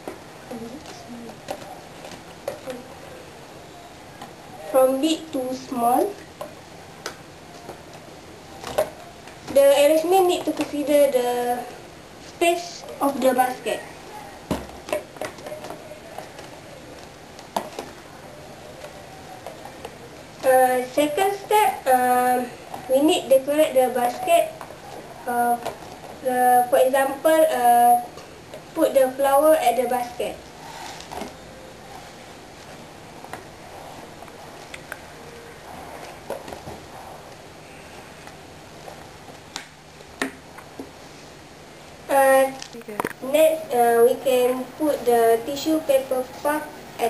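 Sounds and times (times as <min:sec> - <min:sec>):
low room hiss: 0:00.0 - 0:47.0.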